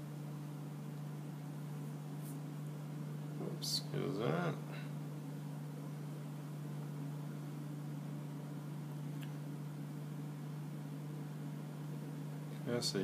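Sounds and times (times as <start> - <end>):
low machine hum: 0.0 - 13.0.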